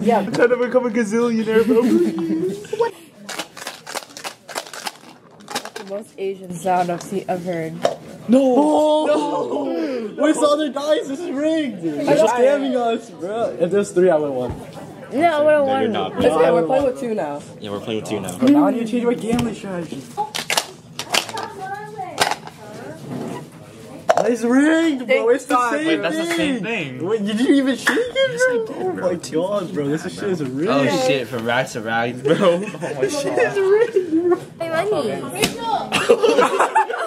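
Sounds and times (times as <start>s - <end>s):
dice rattling in plastic cup: 3.3s - 6.0s.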